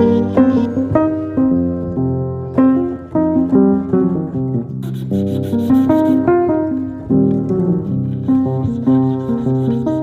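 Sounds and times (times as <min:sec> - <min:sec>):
piano music: 0:00.0 - 0:10.0
file rasping on bow tip: 0:04.8 - 0:06.4, 0:07.8 - 0:10.0.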